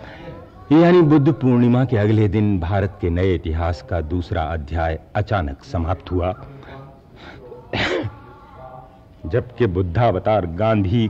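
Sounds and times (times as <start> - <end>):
faint breath: 0.0 - 0.6, 6.6 - 7.6.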